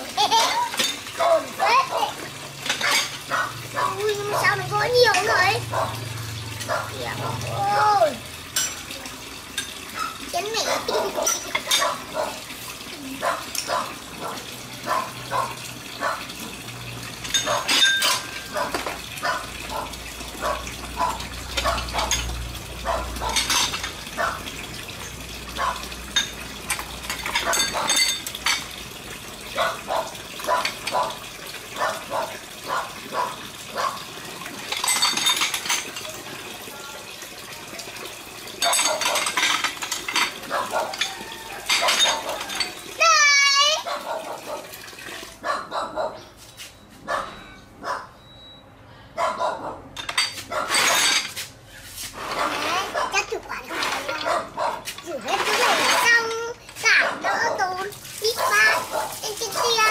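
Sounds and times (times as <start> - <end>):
water splashing in basin: 0.0 - 45.5, 52.1 - 59.9
ceramic dishes clinking: 8.5 - 8.9, 11.2 - 12.0, 17.2 - 18.9, 23.3 - 24.0, 26.1 - 28.7, 34.7 - 36.2, 38.6 - 42.8, 50.0 - 51.4.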